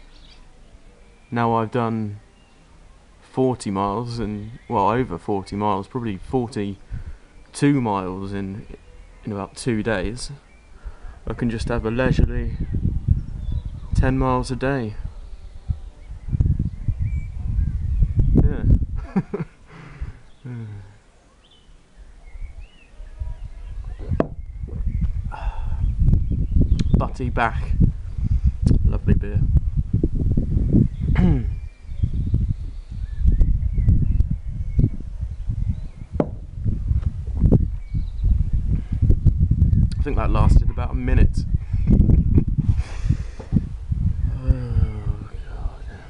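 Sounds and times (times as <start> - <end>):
wind on microphone: 6.1 - 7.5, 9.9 - 20.4, 22.0 - 46.0.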